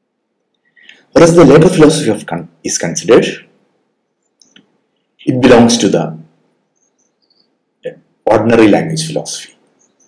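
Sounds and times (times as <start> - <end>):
man lecturing: 0.9 - 3.6, 5.2 - 6.3, 7.8 - 9.6
faint high-pitched chirps: 6.6 - 7.8, 9.7 - 10.0.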